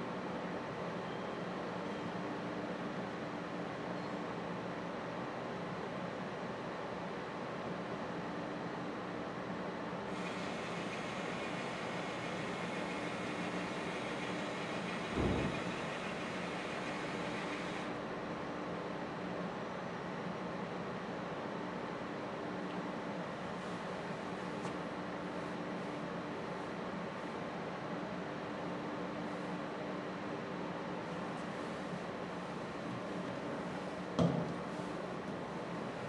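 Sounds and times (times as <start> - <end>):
machine humming: 10.2 - 17.9.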